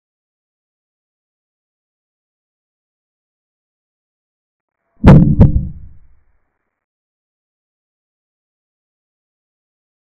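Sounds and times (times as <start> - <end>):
deep thumps: 5.0 - 6.1.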